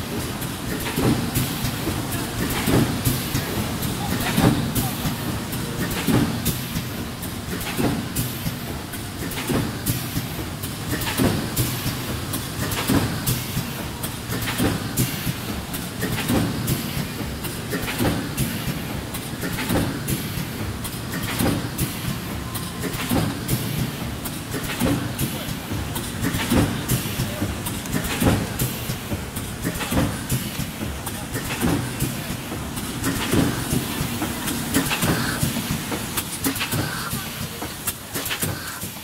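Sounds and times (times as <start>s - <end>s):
thermoforming machine clattering: 0.0s - 39.0s.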